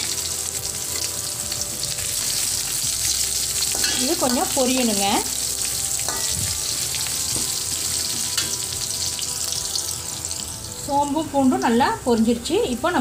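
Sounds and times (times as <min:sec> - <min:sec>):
hot oil sizzling: 0:00.0 - 0:13.0
spatula scraping wok: 0:02.6 - 0:10.5.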